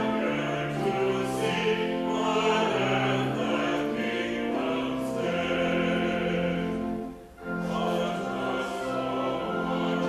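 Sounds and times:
choir singing a hymn: 0.0s - 10.0s
organ chords: 0.0s - 10.0s.

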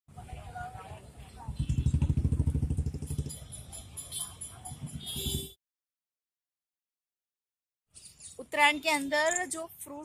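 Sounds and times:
motorcycle engine running: 1.3s - 5.5s.

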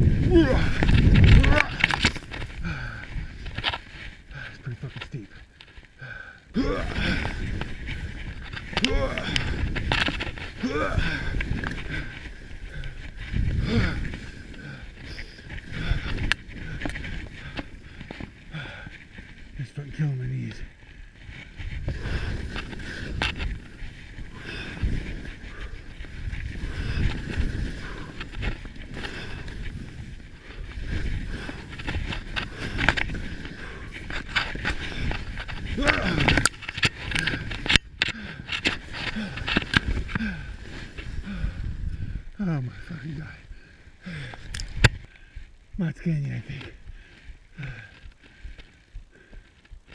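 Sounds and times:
skier breathing heavily and grunting: 0.0s - 49.9s
skis scraping on snow: 7.2s - 8.8s, 9.4s - 41.8s.

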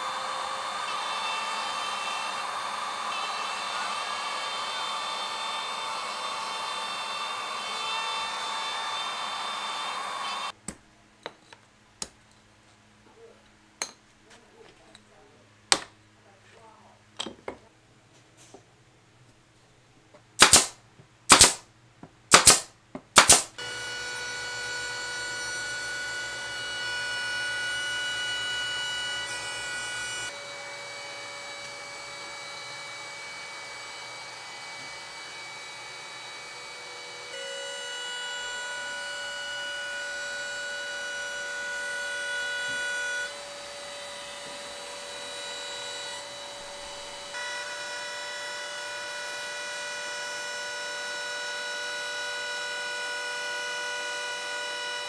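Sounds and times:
trim router running: 0.0s - 10.5s, 23.6s - 55.0s
shop vacuum: 0.0s - 10.6s, 23.2s - 55.0s
loud sharp bangs: 20.4s - 21.6s, 22.3s - 23.6s.

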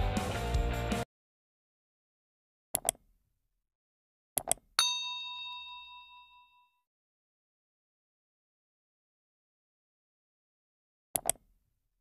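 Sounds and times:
bright bell ding: 4.8s - 6.8s.

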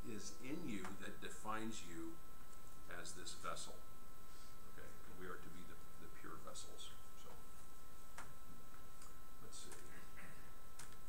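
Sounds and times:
faint high whine: 0.0s - 11.0s
steady background hum: 0.0s - 11.0s.

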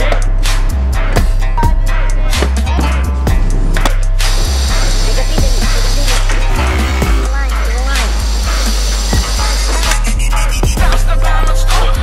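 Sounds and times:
music with heavy bass and drums: 0.0s - 12.0s.

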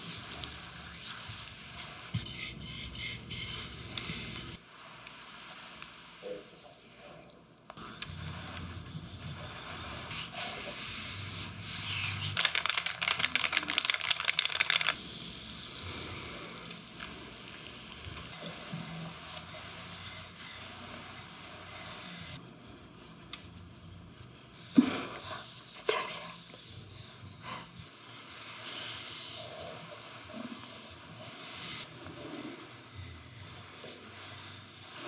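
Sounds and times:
hands rubbing oiled skin: 7.8s - 15.0s.

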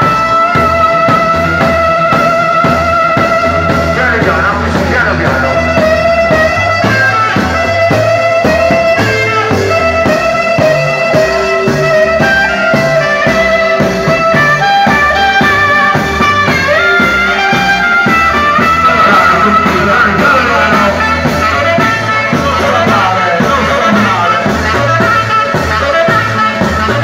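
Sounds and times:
amplified band music with bass: 0.0s - 27.0s.

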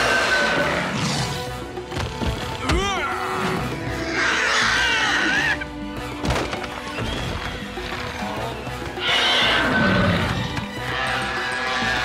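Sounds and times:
background score music: 0.0s - 12.0s.

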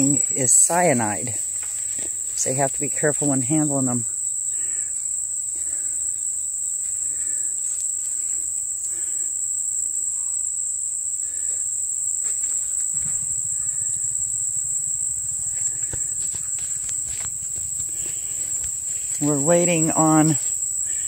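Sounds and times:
high-pitched insect chorus: 0.0s - 21.0s.

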